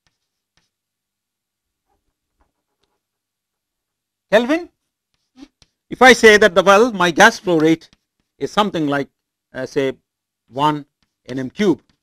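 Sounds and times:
chalk tapping on blackboard: 0.0s - 0.8s, 4.9s - 6.4s, 7.2s - 8.7s, 10.8s - 12.0s.

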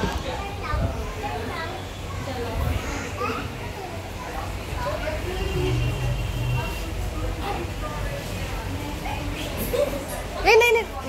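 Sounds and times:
children chattering and calling out: 0.0s - 11.0s
murmur of busy room: 0.0s - 11.0s.

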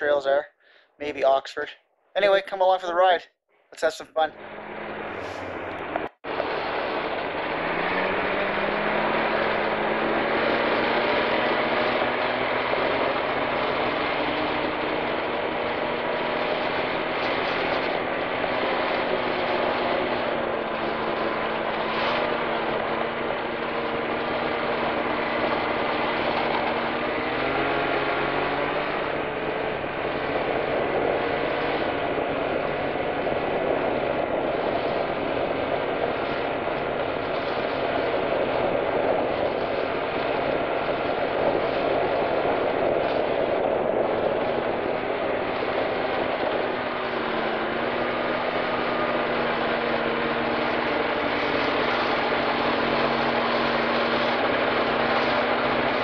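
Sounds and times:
snowmobile engine: 3.8s - 56.0s.

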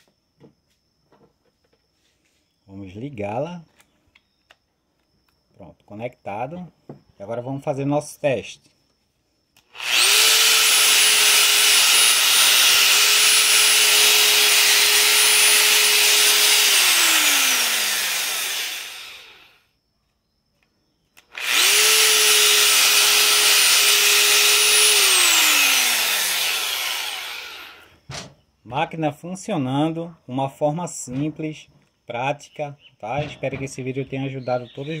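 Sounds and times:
angle grinder whining: 9.6s - 19.7s, 21.2s - 28.0s.

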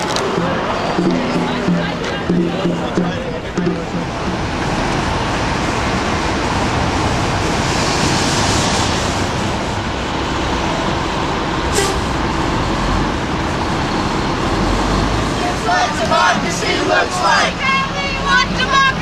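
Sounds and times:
cars driving along street: 0.0s - 19.0s.

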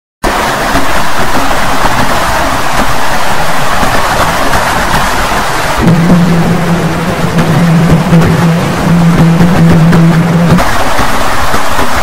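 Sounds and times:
harsh distorted noise: 0.2s - 12.0s
steady low drone: 0.3s - 12.0s.

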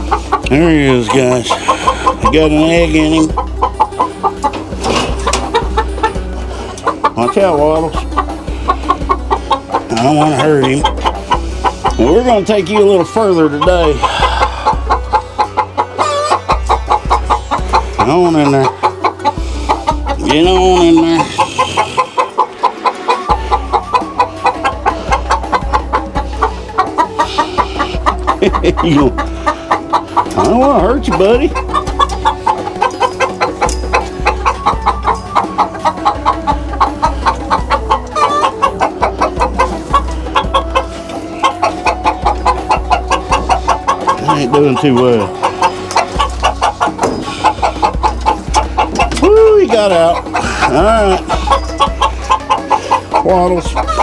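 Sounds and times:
chickens cackling in alarm: 0.0s - 54.0s.

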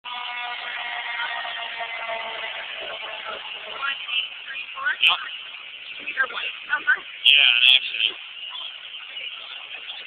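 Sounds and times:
fire truck engine droning: 0.0s - 10.0s.

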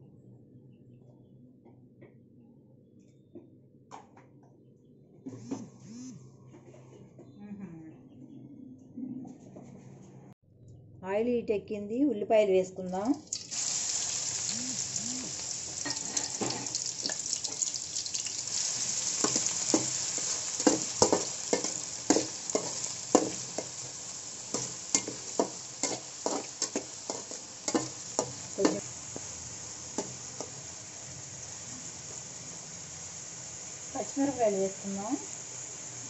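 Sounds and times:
onions sizzling in hot oil: 12.9s - 36.0s
metal spatula scraping a pan: 18.6s - 28.8s.

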